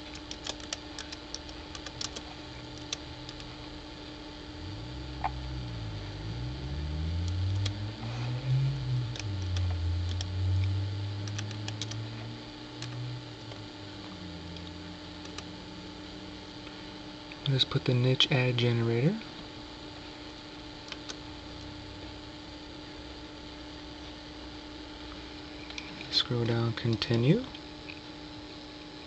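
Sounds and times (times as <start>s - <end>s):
keyboard keys clicking: 0.0s - 3.5s, 7.3s - 7.8s, 11.2s - 12.0s
electrical hum: 0.0s - 29.0s
low rumble gliding in pitch: 3.5s - 16.8s.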